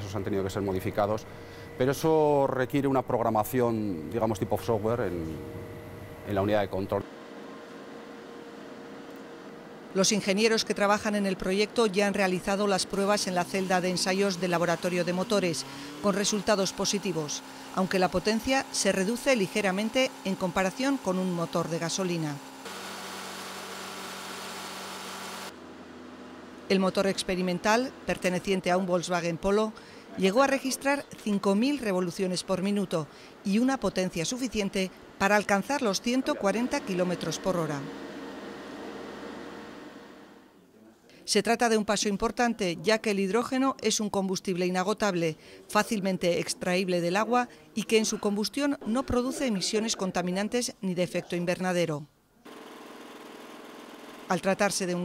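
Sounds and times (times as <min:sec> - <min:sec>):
car engine humming: 0:00.0 - 0:02.1, 0:12.2 - 0:28.6
quieter lower hum: 0:00.0 - 0:09.9.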